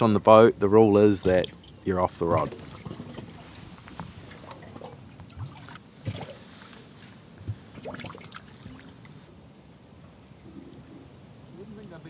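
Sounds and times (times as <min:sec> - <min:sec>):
water lapping against boat hull: 0:00.0 - 0:09.3.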